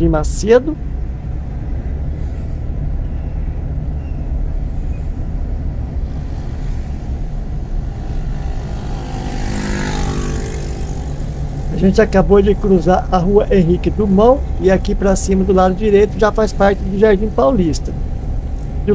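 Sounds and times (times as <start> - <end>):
car engine and road rumble: 0.0 - 18.9.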